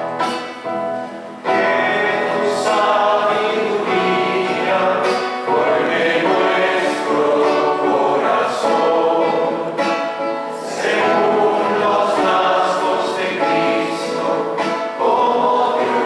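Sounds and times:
choir singing a hymn: 0:01.4 - 0:16.0.

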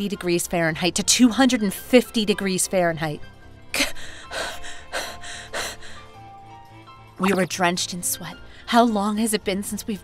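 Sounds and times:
person panting heavily: 0:04.0 - 0:06.2.

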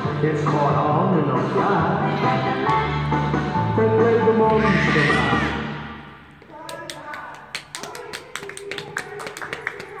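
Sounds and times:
music: 0:00.0 - 0:06.3
scattered hand claps: 0:06.6 - 0:10.0.

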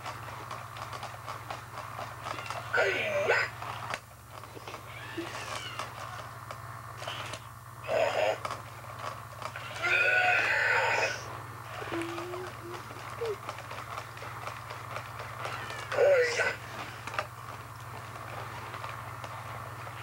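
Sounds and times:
low motor hum: 0:00.0 - 0:20.0
toy robot electronic voice noises: 0:02.4 - 0:03.6, 0:04.9 - 0:05.9, 0:07.0 - 0:08.5, 0:09.6 - 0:13.4, 0:15.5 - 0:16.6.

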